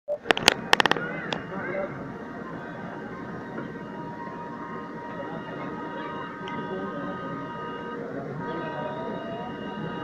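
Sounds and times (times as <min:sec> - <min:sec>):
high-pitched whining tones: 0:01.0 - 0:10.0.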